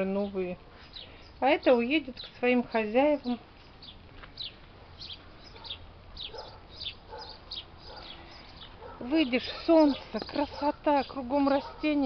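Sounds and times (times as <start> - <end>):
songbirds chirping: 0.0 - 12.0.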